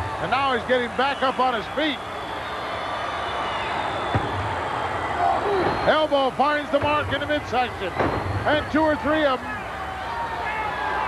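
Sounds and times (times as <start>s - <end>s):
arena crowd noise: 0.0s - 11.0s
thump: 4.1s - 4.5s, 8.0s - 8.4s.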